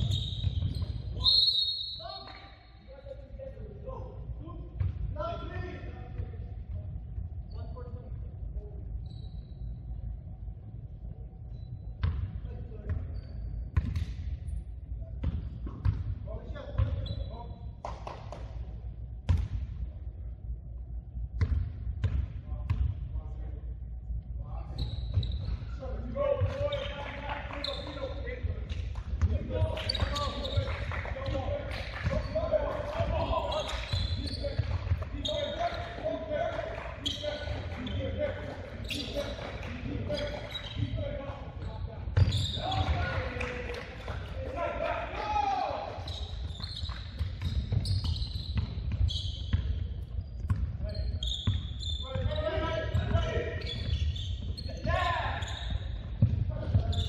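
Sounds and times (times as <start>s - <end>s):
sneaker squeaks: 0.0s - 3.3s, 7.4s - 10.2s, 11.5s - 14.6s, 15.2s - 18.6s, 24.5s - 57.0s
basketball bouncing on wooden floor: 50.4s - 51.6s.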